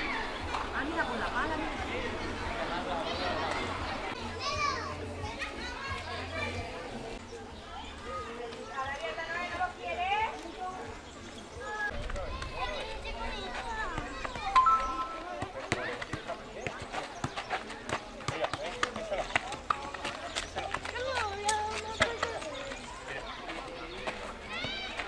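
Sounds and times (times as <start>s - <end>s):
voices chattering: 0.0s - 25.0s.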